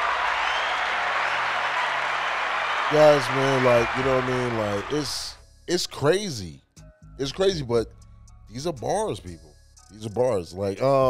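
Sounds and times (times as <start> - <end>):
crowd applause and cheering: 0.0 - 5.4.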